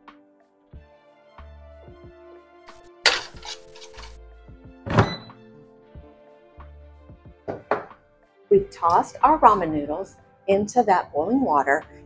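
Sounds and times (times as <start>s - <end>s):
soft background music: 0.0s - 12.0s
air fryer basket scraping: 3.1s - 4.2s
air fryer basket thunk: 4.9s - 5.4s.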